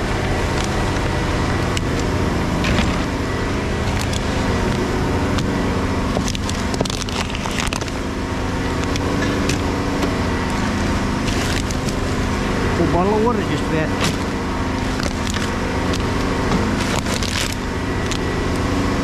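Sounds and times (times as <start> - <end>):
plastic rubbish rustling: 0.0 - 8.1, 8.7 - 12.3, 13.4 - 18.3
low mechanical hum: 0.0 - 19.0.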